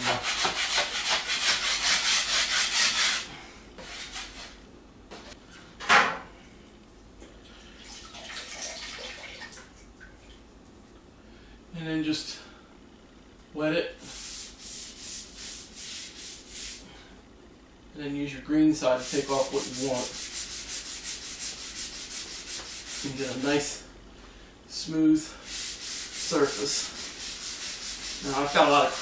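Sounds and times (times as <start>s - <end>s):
drywall knife scraping ceiling: 0.0s - 4.6s, 18.9s - 23.7s, 25.4s - 29.0s.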